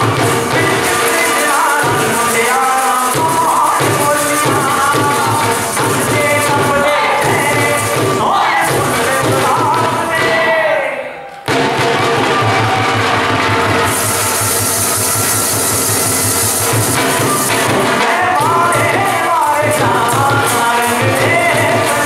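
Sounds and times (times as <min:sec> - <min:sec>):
dhol drum beat: 0:00.0 - 0:10.6, 0:11.5 - 0:22.0
folk song singing: 0:00.0 - 0:22.0.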